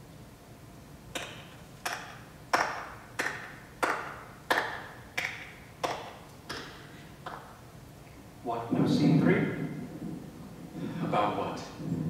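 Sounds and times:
person clapping slowly: 1.1 - 7.6.

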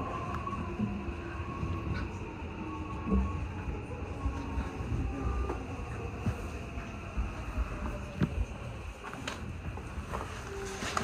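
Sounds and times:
faint train whine: 0.0 - 11.0
train wheels rumbling on rail: 0.0 - 11.0.

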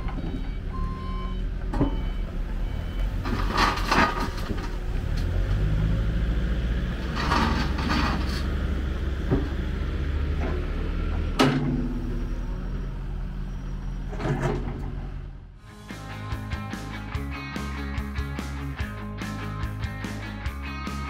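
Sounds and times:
excavator diesel engine running: 0.0 - 21.0.

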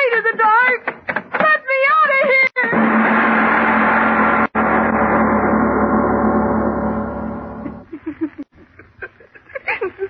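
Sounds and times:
dramatic music chord: 4.6 - 7.9.

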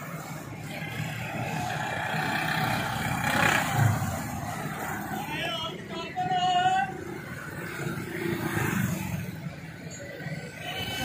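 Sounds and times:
vehicle engines rumbling: 0.0 - 11.0.

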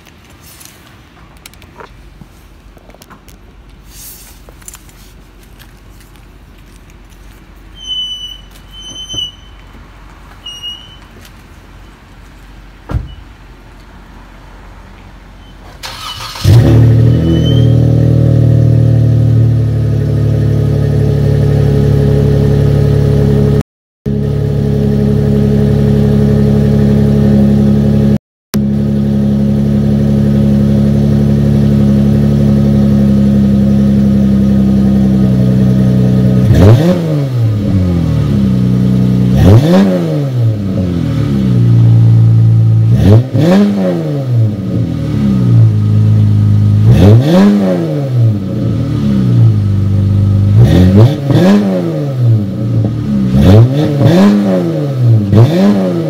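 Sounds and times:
car engine cranking: 15.5 - 18.2
car engine revving: 15.8 - 56.0.

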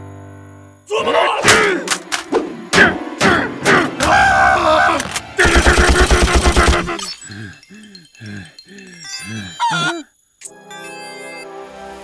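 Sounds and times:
strained vocal cry: 2.8 - 10.2.

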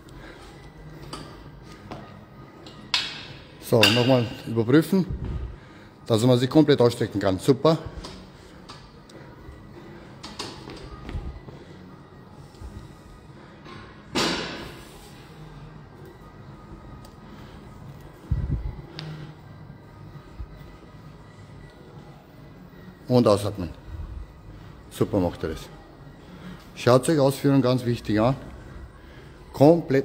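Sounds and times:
faint background music: 0.0 - 30.0.

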